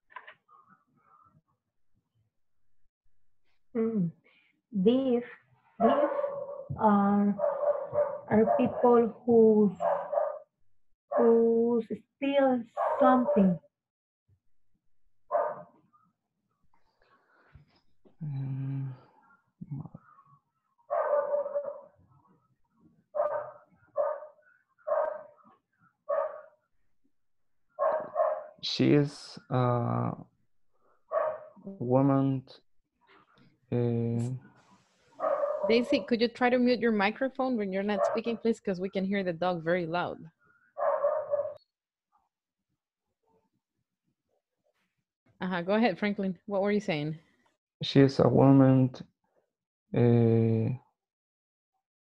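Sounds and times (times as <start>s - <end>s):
dog barking loudly: 7.4s - 8.8s, 20.9s - 21.9s, 23.2s - 24.3s, 35.2s - 35.7s, 40.8s - 41.6s.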